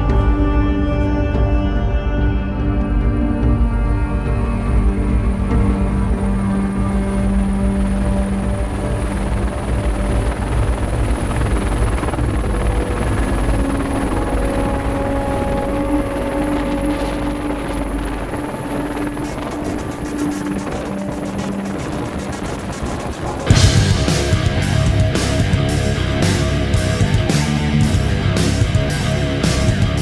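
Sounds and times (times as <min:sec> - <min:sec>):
sustained music notes: 0:00.0 - 0:30.0
helicopter turbine whine: 0:01.3 - 0:30.0
helicopter rotor rumble: 0:02.9 - 0:30.0.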